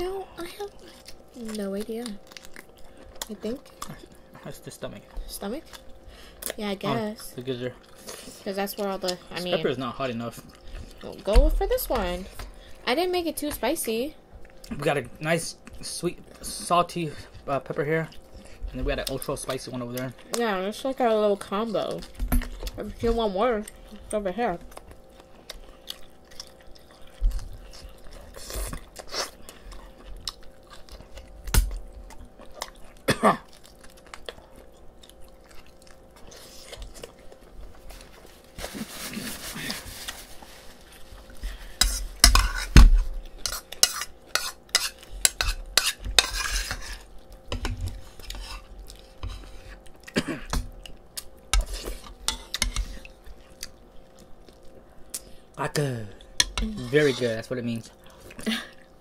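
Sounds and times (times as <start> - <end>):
chewing: 0.7 - 9.5, 10.2 - 11.3, 24.7 - 38.5, 43.2 - 55.5.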